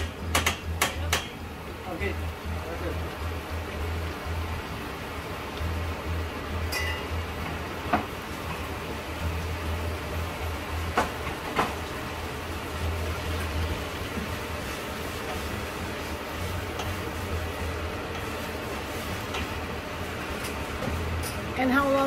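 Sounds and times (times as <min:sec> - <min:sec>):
low rumbling hum: 0:00.0 - 0:22.0.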